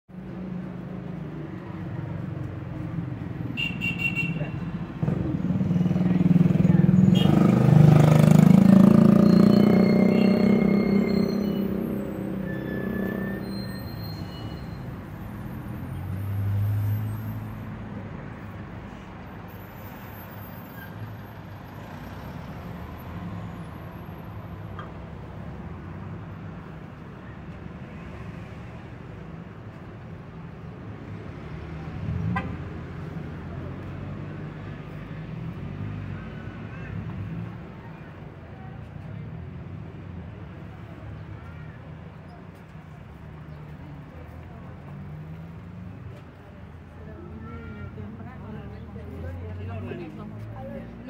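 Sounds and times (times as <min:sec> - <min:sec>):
traffic hum: 0:00.1 - 0:51.0
vehicle engine passing by: 0:04.8 - 0:13.5.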